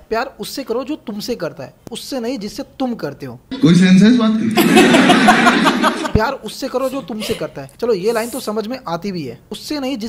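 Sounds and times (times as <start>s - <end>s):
loud laughter: 3.5s - 6.2s.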